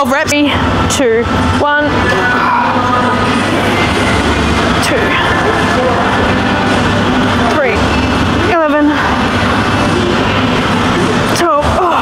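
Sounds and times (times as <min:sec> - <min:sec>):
people's voices in gym: 0:00.0 - 0:12.0.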